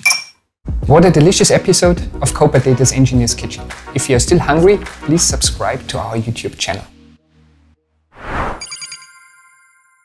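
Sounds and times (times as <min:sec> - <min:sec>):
short whoosh: 0:08.2 - 0:08.6
bright high chime: 0:08.6 - 0:10.0.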